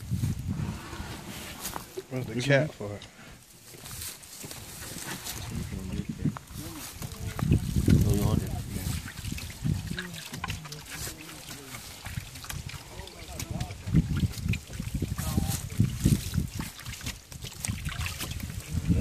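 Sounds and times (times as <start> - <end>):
water splashing and trickling: 1.4 - 19.0
men talking: 1.9 - 3.4, 4.7 - 16.1.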